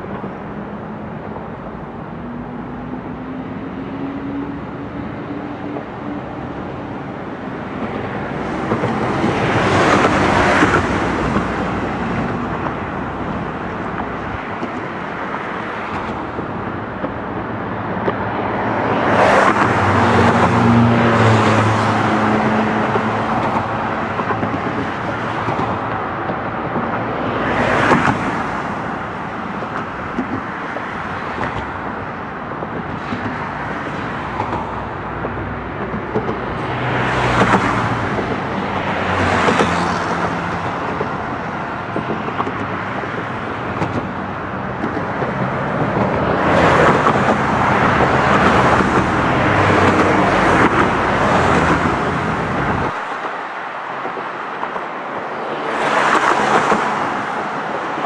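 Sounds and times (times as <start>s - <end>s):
cars passing by: 0.0s - 58.0s.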